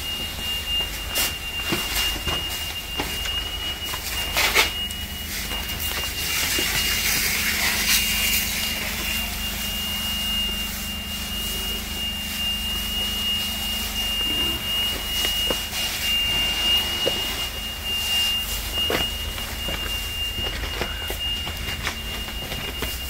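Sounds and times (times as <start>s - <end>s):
continuous high-pitched tone: 0.0s - 23.0s
low hum: 4.8s - 23.0s.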